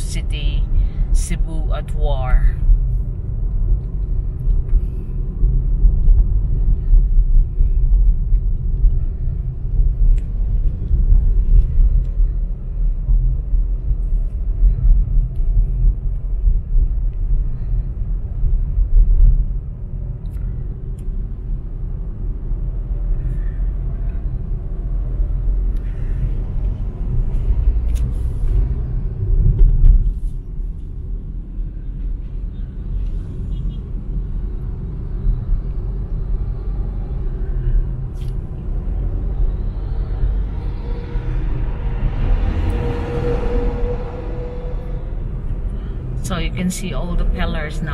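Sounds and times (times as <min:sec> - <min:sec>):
road and engine rumble: 0:00.0 - 0:47.9
truck passing: 0:36.3 - 0:47.9.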